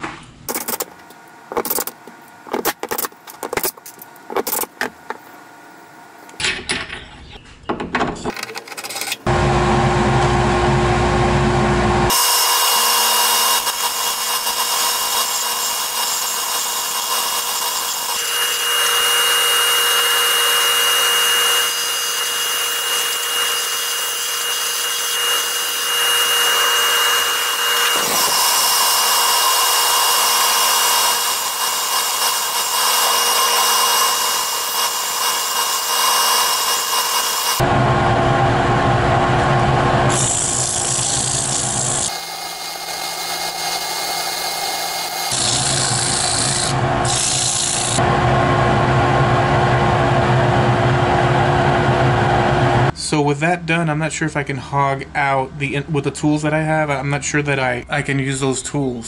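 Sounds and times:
low hum: 9.2 - 12.1, 37.6 - 42.1, 48.0 - 53.0
wood lathe cutting with high whine: 9.3 - 37.7, 40.1 - 48.1.

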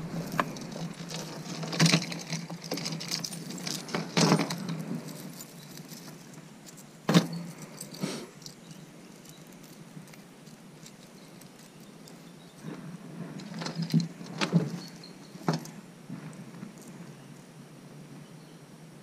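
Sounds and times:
metal chains jangling: 0.0 - 12.6.

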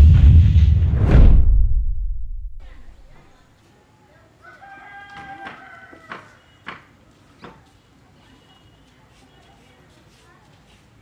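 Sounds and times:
quiet outdoor ambience: 0.0 - 11.0
rooster crowing: 4.4 - 6.6.

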